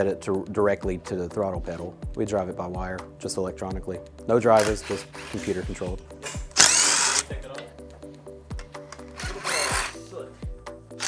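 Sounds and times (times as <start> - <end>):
background music with beat: 0.0 - 11.0
cordless drill spinning: 4.6 - 7.3, 9.0 - 10.1.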